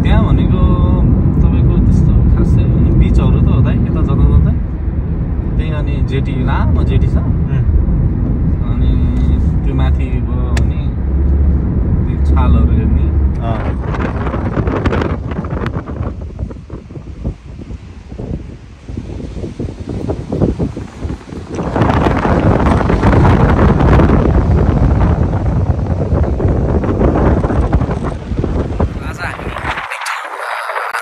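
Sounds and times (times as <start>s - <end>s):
car road noise rumble: 0.0s - 31.0s
wind buffeting microphone: 0.0s - 31.0s.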